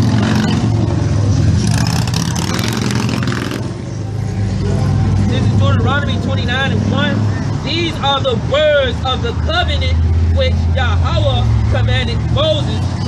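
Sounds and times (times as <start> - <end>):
vehicle engine running: 0.0 - 13.0.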